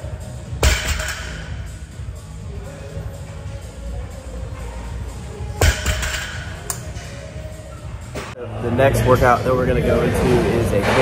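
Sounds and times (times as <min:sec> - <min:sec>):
background music: 0:00.0 - 0:11.0
barbell thudding on gym floor: 0:00.6 - 0:01.5, 0:05.6 - 0:06.6.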